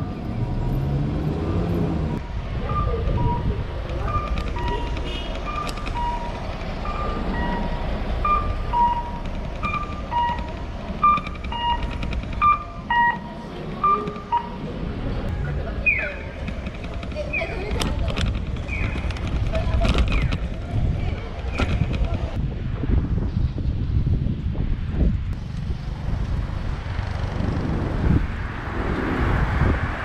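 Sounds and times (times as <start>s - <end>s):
street traffic noise: 0.0s - 30.0s
crossing signal cuckoo chime: 2.7s - 14.6s.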